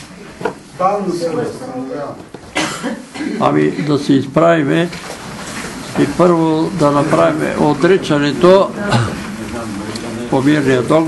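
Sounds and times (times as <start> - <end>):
person coughing: 2.5 - 3.8, 8.8 - 9.3.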